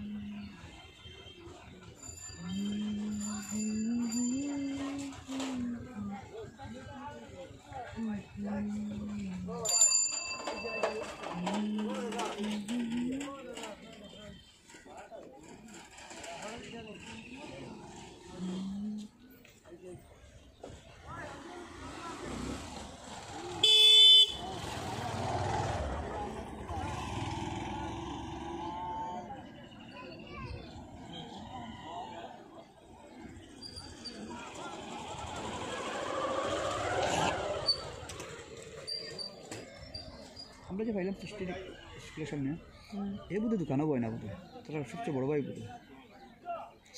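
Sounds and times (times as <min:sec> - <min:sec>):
voices talking: 0:00.0 - 0:46.9.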